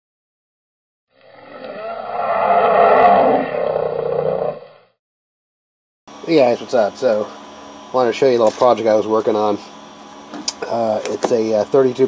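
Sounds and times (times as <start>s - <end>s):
dense roar-like swell: 1.2s - 4.8s.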